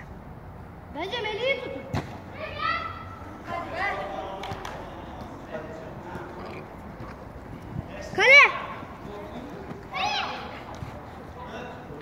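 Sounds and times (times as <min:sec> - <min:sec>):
children calling and shouting: 0:00.9 - 0:12.0.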